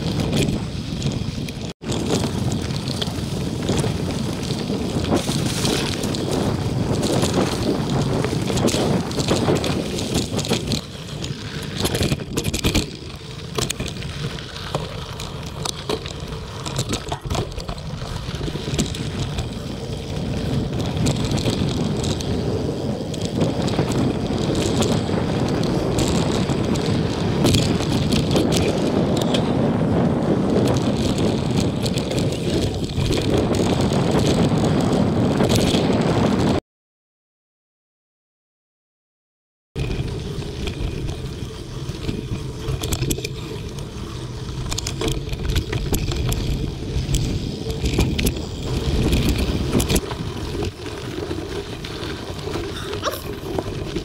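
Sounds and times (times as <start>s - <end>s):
bike rattles and clicks: 0.0s - 36.6s, 39.8s - 54.0s
bike tyres rumbling on dirt: 0.0s - 36.6s, 39.8s - 54.0s
wind on microphone: 0.0s - 36.6s, 39.8s - 54.0s.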